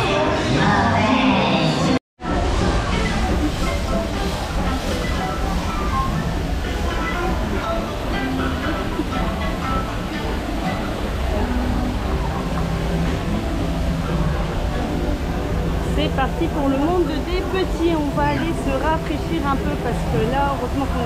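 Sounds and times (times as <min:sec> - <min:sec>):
music: 0:00.0 - 0:21.0
train rumbling: 0:02.2 - 0:21.0
voices: 0:14.5 - 0:21.0.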